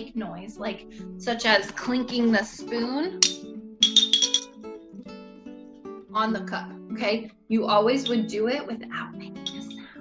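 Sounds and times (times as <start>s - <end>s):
spoon clinking ceramic cup: 3.2s - 4.5s, 9.4s - 9.9s
soft acoustic guitar music: 4.4s - 10.0s.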